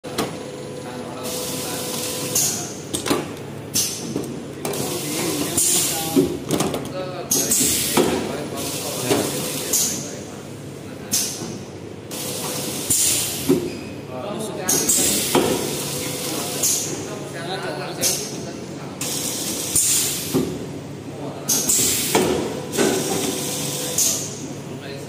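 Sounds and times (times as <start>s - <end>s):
packing machine running: 0.0s - 9.9s, 18.8s - 24.7s.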